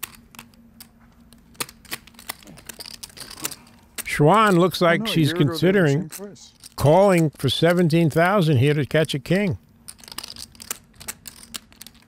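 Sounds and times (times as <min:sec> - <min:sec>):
faint steady hum: 0:00.0 - 0:12.0
poker chips clicking together: 0:00.0 - 0:12.0.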